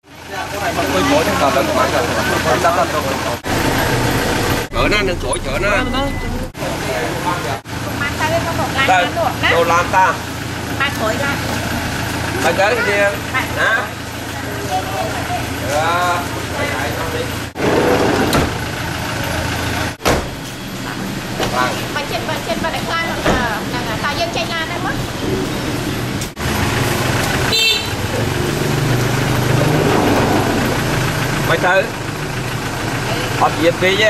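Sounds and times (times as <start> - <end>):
engine idling: 0.0 - 34.0
people talking: 4.7 - 10.2, 20.8 - 25.4.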